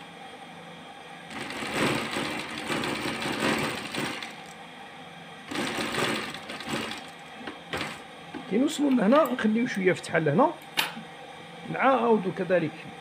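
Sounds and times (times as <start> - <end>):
sewing machine stitching: 1.3 - 4.4, 5.5 - 7.1, 7.7 - 8.0.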